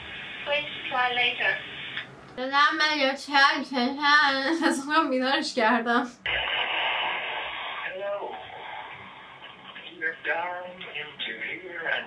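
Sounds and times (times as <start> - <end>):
phone line static hiss: 0.0 - 2.4, 6.2 - 12.0.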